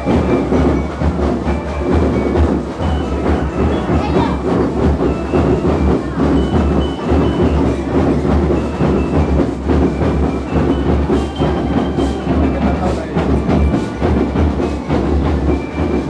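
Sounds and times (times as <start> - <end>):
bass drum beats: 0.0 - 16.0
rapid drumming: 0.0 - 16.0
short high melody notes: 0.0 - 16.0.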